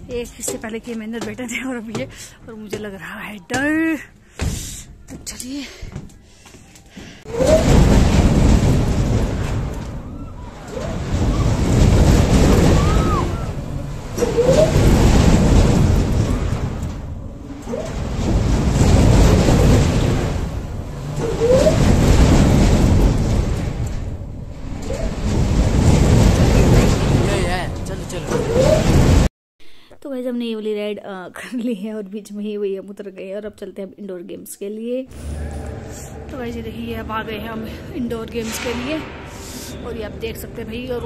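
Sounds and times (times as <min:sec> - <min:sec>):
rising squeals: 0:07.3 - 0:29.3, 0:35.1 - 0:41.0
wind rushing over microphone: 0:07.3 - 0:29.3.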